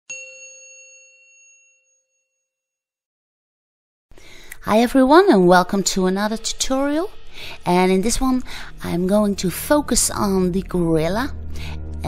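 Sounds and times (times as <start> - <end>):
bell-like chime ringing: 0.1 - 2.8.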